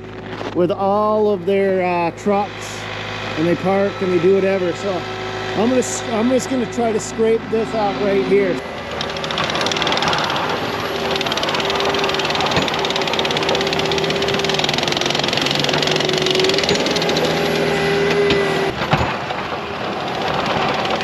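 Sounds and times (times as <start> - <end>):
plow scraping snow: 0.0 - 21.0
track loader engine whining: 0.0 - 21.0.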